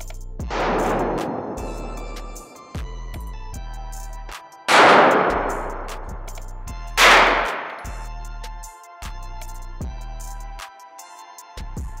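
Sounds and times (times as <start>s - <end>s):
background music with steady beat: 0.0s - 12.0s
pistol shots echoing: 0.5s - 2.9s, 4.7s - 6.1s, 7.0s - 8.0s.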